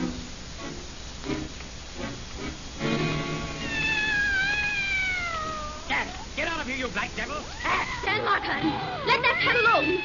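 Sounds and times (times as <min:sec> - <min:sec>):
cat's long meow: 0:03.6 - 0:06.0.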